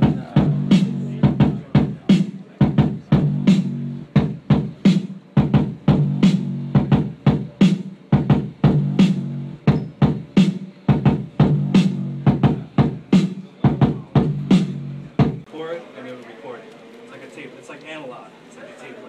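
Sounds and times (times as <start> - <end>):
programmed drum beat: 0.0 - 15.5.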